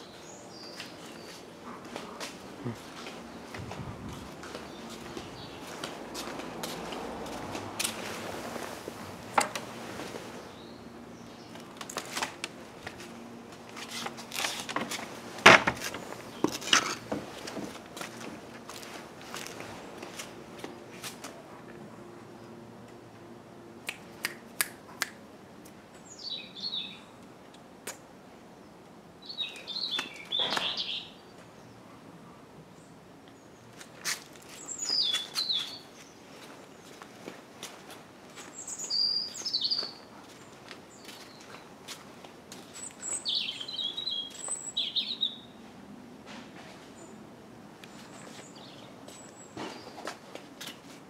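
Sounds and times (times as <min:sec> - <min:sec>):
songbird singing: 0:00.0 - 0:07.4, 0:10.3 - 0:11.9, 0:25.9 - 0:27.3, 0:28.4 - 0:32.0, 0:34.4 - 0:37.1, 0:38.2 - 0:41.8, 0:42.5 - 0:45.7, 0:47.8 - 0:50.2
bird chirping: 0:26.0 - 0:27.1, 0:29.2 - 0:31.8, 0:34.5 - 0:36.2, 0:38.4 - 0:40.1, 0:42.7 - 0:45.6.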